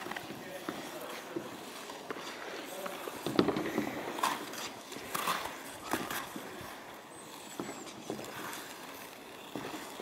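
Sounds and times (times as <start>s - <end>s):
ice skate blades scraping ice: 0.0s - 10.0s.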